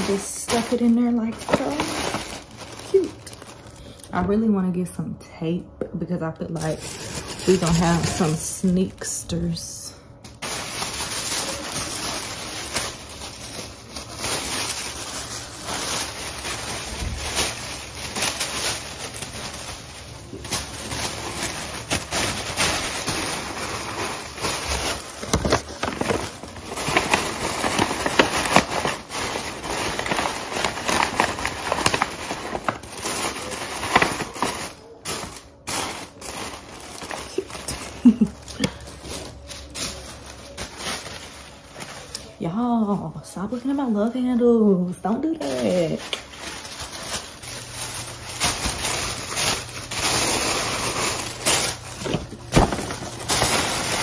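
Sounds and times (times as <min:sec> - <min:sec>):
tissue paper rustling: 0:00.0 - 0:04.4, 0:06.5 - 0:09.6, 0:10.2 - 0:44.2, 0:44.9 - 0:54.0.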